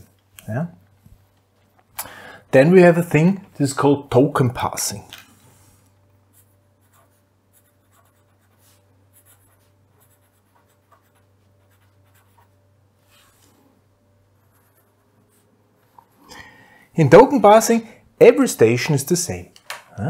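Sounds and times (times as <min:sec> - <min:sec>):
steady low hum: 0:00.0 - 0:20.0
pen scratching on paper: 0:06.3 - 0:13.4, 0:14.4 - 0:16.1.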